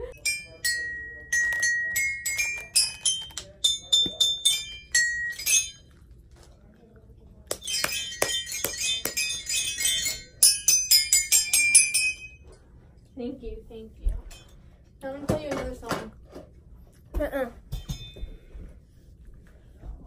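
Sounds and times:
toy xylophone ringing notes: 0.2s - 5.9s, 7.6s - 12.4s.

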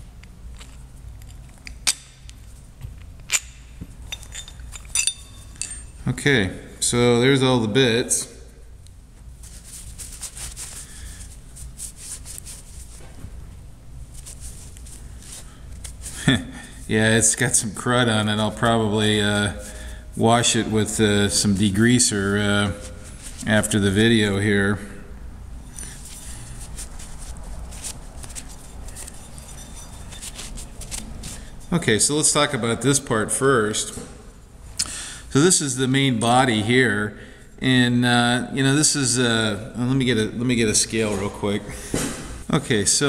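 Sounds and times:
low steady hum: 0.0s - 43.0s
cloth rag rubbing metal: 9.4s - 13.0s, 14.0s - 16.3s, 25.7s - 31.8s.

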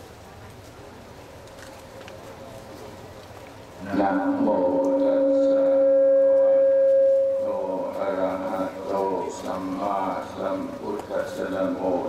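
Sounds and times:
person speaking: 3.8s - 5.8s
microphone feedback howl: 3.8s - 8.9s.

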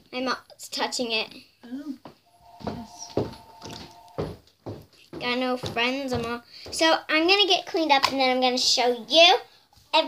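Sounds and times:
faint two-pitch tone: 2.3s - 4.2s
slime squelching: 3.2s - 4.2s.

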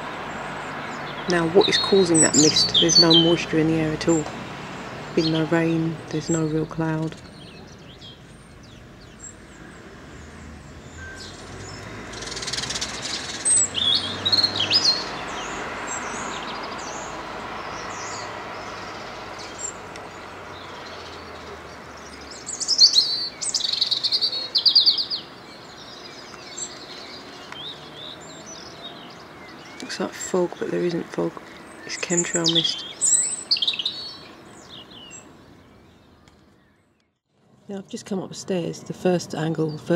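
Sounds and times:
songbirds chirping and trilling: 0.0s - 39.9s.

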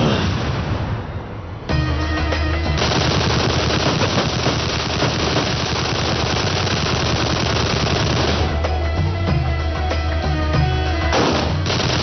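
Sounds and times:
rapid automatic gunfire: 2.8s - 8.6s, 11.2s - 12.0s.

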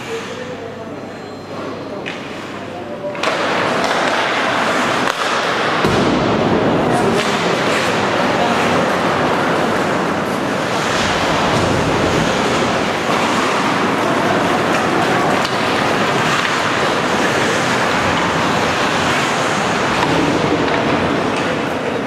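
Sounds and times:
ice hockey game noise: 0.0s - 22.0s
skates on ice: 3.1s - 22.0s.

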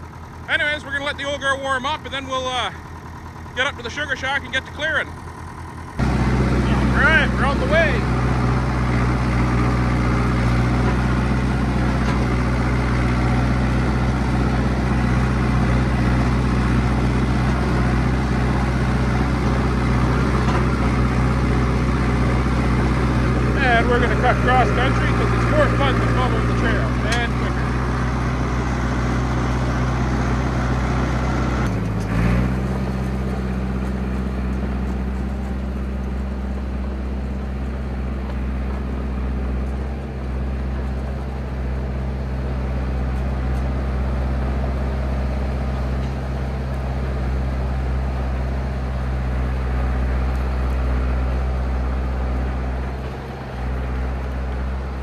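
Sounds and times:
bulldozer engine droning: 0.0s - 55.0s.

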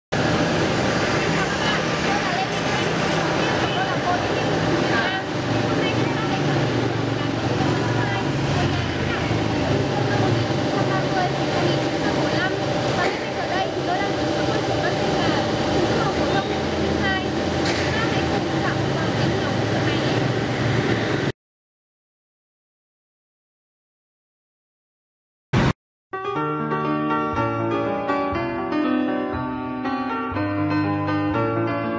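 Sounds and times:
road traffic noise: 0.1s - 21.4s
woman speaking: 1.2s - 20.3s
woman talking: 1.2s - 20.3s.

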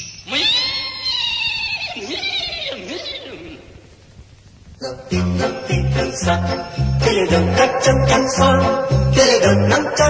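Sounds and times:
horse whinnying: 0.3s - 4.0s.

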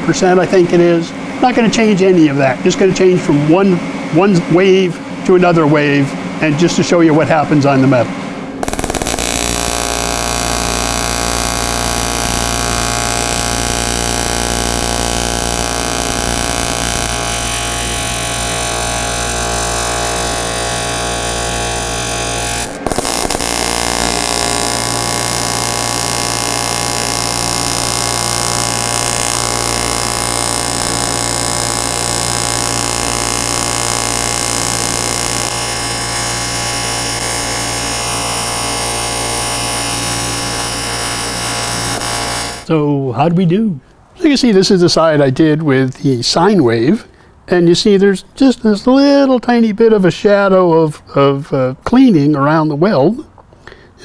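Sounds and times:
welding arc buzzing: 8.4s - 42.7s.

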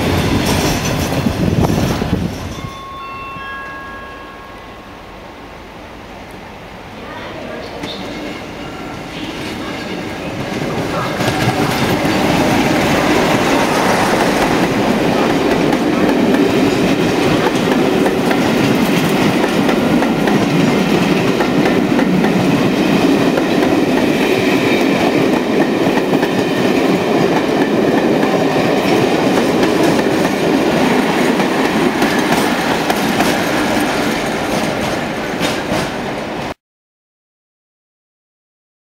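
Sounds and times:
coach wheels rumbling on rails: 0.0s - 3.0s, 6.2s - 36.5s
diesel locomotive passing: 0.0s - 36.5s.

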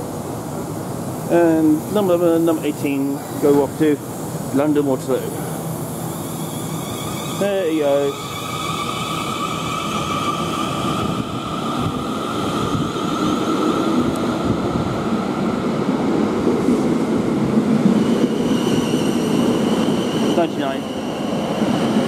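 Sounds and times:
rumble of train wheels: 0.0s - 22.0s
train high whine: 0.0s - 22.0s.

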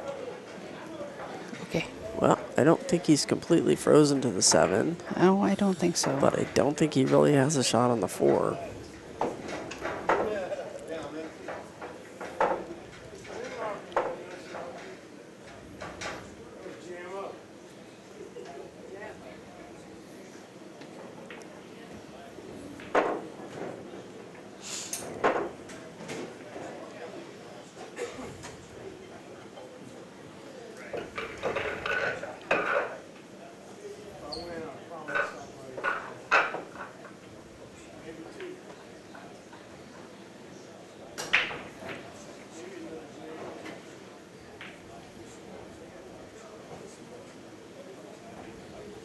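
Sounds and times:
faint voices: 0.0s - 49.0s
pool balls clacking: 5.9s - 16.3s, 22.7s - 23.9s, 25.1s - 26.4s, 30.8s - 33.1s, 34.5s - 37.3s, 41.2s - 42.2s
billiard balls clacking: 9.2s - 10.5s, 11.3s - 14.8s, 30.9s - 33.0s.

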